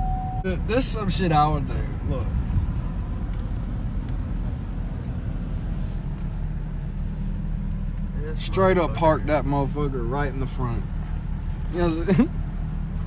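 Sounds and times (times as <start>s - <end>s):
vehicle engine low rumble: 0.0s - 13.0s.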